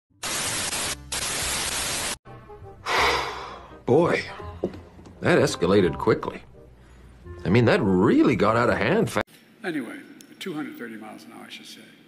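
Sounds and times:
tv static hiss: 0.2 - 2.2.

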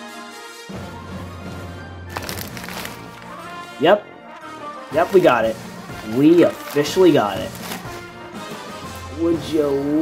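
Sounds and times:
background music: 0.0 - 10.0
plastic bag rustling and crinkling: 2.1 - 3.5, 4.9 - 8.1.

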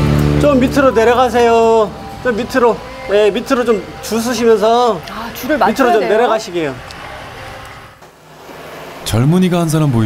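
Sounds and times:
tractor engine rumbling: 0.0 - 8.0
outdoor noise: 0.0 - 10.0.

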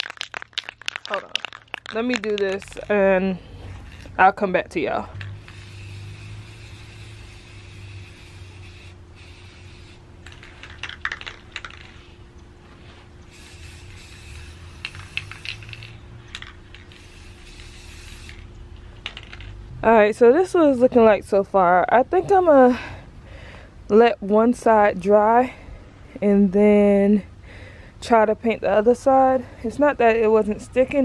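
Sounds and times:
mixing ball rattling in can: 0.0 - 3.0, 10.2 - 12.1, 14.8 - 19.6
spray paint can hissing: 0.0 - 3.1, 3.8 - 4.3, 5.0 - 12.1, 13.2 - 19.5.

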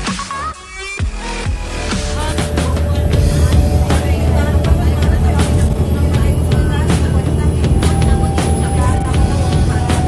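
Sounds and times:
background music with beat: 0.0 - 10.0
bus engine and road noise: 2.0 - 10.0.

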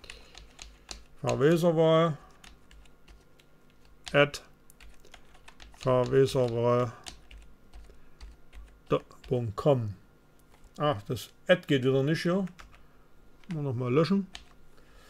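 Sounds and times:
man speaking: 1.2 - 2.2, 4.1 - 4.5, 5.8 - 7.1, 8.9 - 10.0, 10.8 - 12.6, 13.5 - 14.3.

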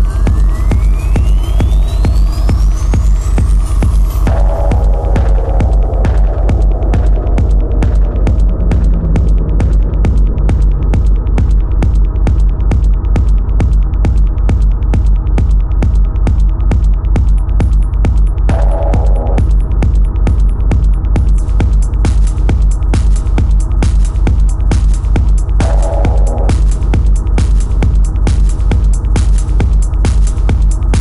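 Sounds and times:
throbbing bass: 0.0 - 31.0
high rising sweep: 3.8 - 11.4, 18.5 - 19.4, 25.6 - 27.0
synth tones: 4.1 - 10.0, 18.5 - 19.5, 25.6 - 26.9.

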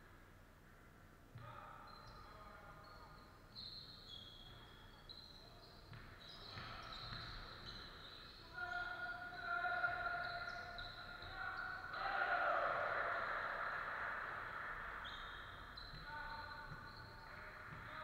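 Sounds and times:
sneakers squeaking: 0.6 - 18.0
basketball bouncing on court: 4.4 - 8.4, 15.0 - 18.0.

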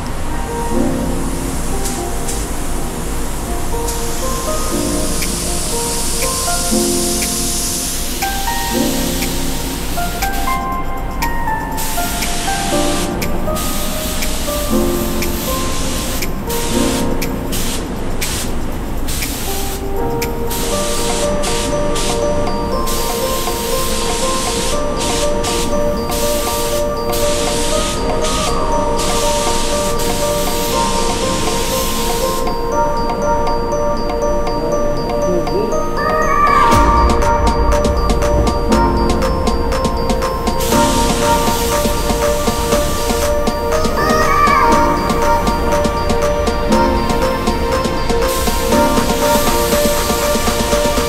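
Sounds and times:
background music: 0.0 - 51.0
spray gun hissing: 1.6 - 19.8, 20.5 - 32.6, 39.1 - 51.0.

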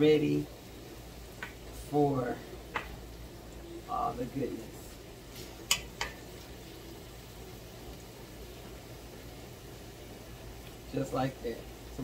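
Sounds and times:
vegetables sizzling in a skillet: 0.0 - 12.0.

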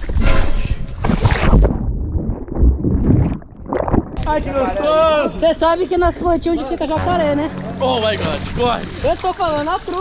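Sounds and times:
muffled underwater thumps and rumbles: 0.0 - 4.5
water splashing hard: 7.2 - 10.0.

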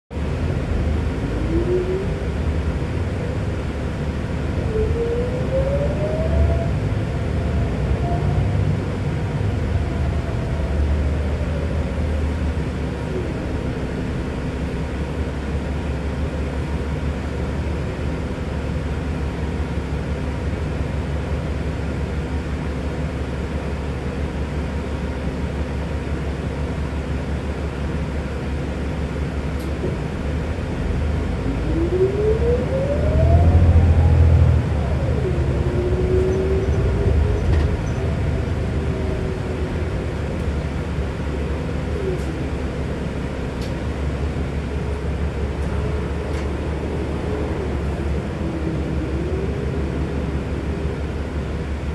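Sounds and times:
bus engine drone: 0.1 - 51.9
engine whine rising in pitch: 0.2 - 15.1, 29.8 - 51.9.

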